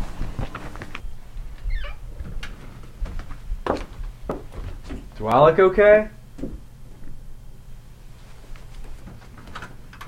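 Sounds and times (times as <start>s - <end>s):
footsteps and shuffling: 0.0s - 5.3s, 8.1s - 9.4s
brief high squeak: 1.7s - 2.0s.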